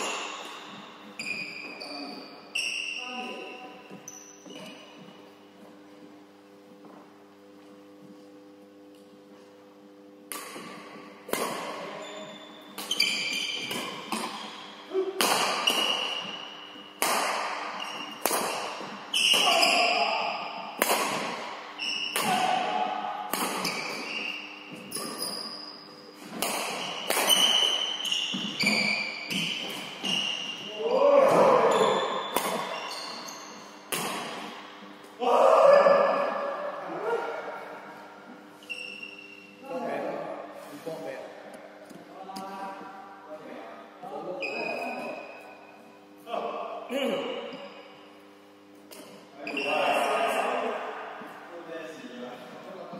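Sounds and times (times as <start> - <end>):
sneakers squeaking on wooden floor: 0.0 - 5.8, 11.7 - 14.9, 15.5 - 16.8, 17.7 - 20.6, 21.8 - 22.5, 23.5 - 30.7, 31.3 - 34.5, 38.4 - 39.6, 49.4 - 50.4
racket hitting shuttlecock: 10.3 - 12.0, 12.8 - 20.0, 20.8 - 25.4, 26.2 - 30.6, 31.3 - 33.3, 33.9 - 34.7.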